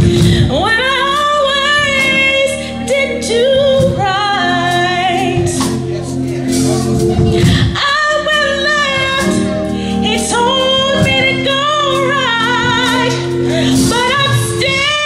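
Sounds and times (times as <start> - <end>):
band accompaniment: 0.0 - 15.0
woman singing gospel: 0.0 - 15.0.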